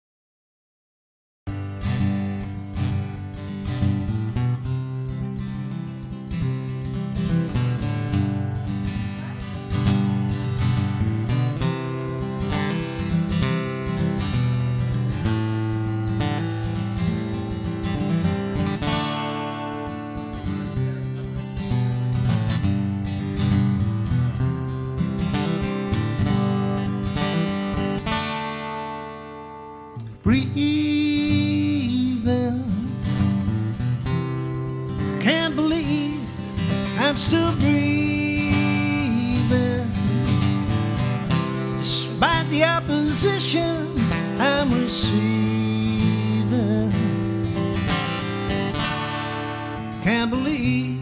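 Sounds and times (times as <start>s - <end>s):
acoustic guitar strumming chords: 1.5s - 51.0s.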